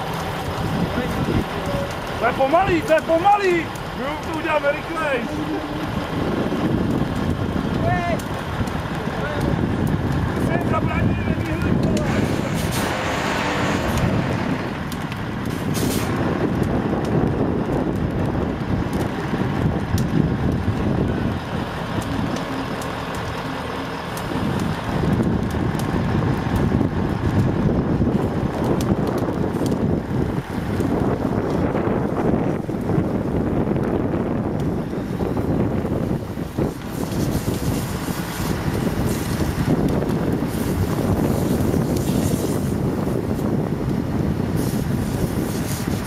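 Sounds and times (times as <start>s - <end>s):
fire engine pump running: 0.0s - 46.0s.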